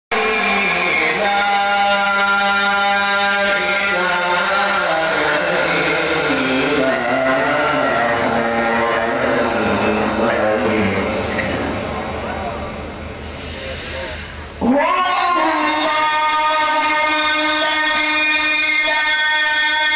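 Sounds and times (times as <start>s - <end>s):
man reciting melodically: 0.1s - 11.6s, 13.6s - 19.9s.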